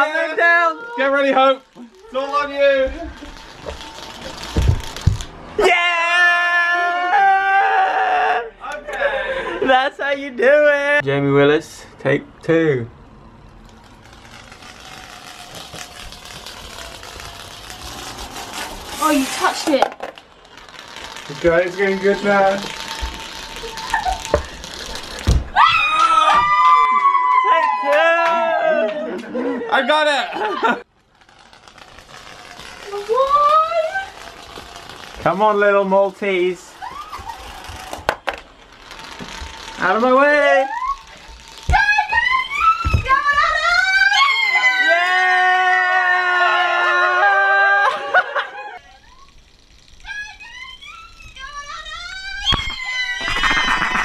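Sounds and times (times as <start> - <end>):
sweet rolling down tape measure: 0.9 - 5.6, 13.4 - 26.9, 30.9 - 45.5, 47.0 - 54.0.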